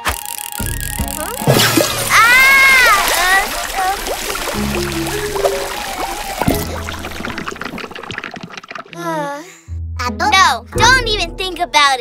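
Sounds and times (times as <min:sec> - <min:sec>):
cartoon water spurting: 0:00.0 - 0:09.3
background music: 0:00.0 - 0:12.0
child startled cry: 0:02.1 - 0:03.3.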